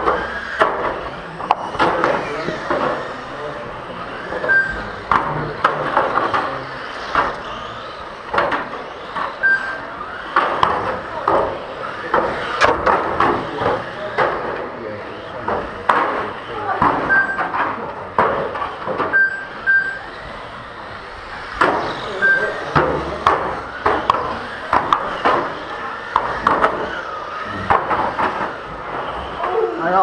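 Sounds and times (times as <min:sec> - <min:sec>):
toy cars striking barriers: 0:00.0 - 0:30.0
short high beeps: 0:04.4 - 0:04.8, 0:09.4 - 0:09.8, 0:17.1 - 0:17.5, 0:19.1 - 0:20.1, 0:22.2 - 0:22.6
indistinct echoing voices: 0:20.2 - 0:30.0.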